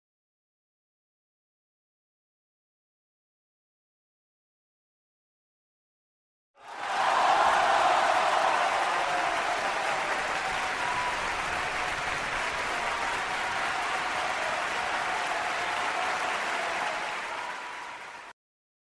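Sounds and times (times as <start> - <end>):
crowd applause: 6.6 - 18.4
faint cheering: 6.6 - 18.4.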